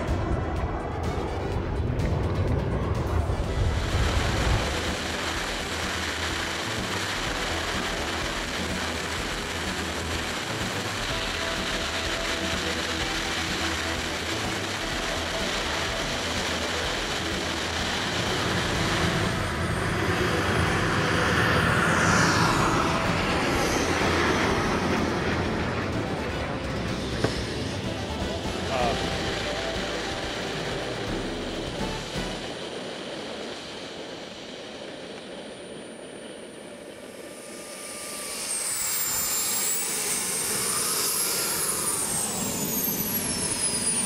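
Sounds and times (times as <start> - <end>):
wind noise: 0.0 - 12.3
high turbine whine: 0.0 - 44.0
model jet turbine roar: 0.0 - 44.0.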